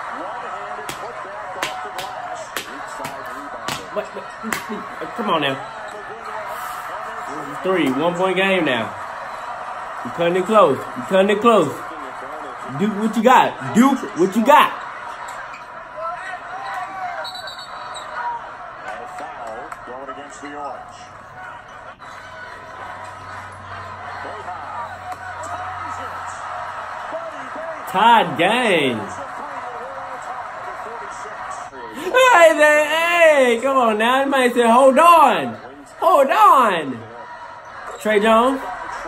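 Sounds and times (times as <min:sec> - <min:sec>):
arena crowd noise: 0:00.0 - 0:39.0
commentator talking: 0:00.8 - 0:05.6, 0:07.5 - 0:09.0, 0:10.0 - 0:11.9, 0:12.5 - 0:14.8, 0:27.8 - 0:29.3, 0:31.8 - 0:37.1, 0:38.0 - 0:38.7.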